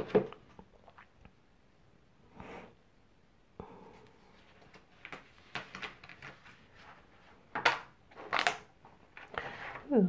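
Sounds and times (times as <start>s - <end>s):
rustling and scraping handling noises: 4.0s - 10.0s.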